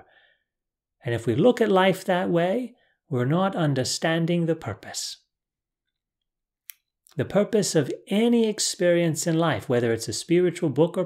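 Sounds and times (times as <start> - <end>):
man speaking: 1.0 - 5.2, 7.1 - 11.0.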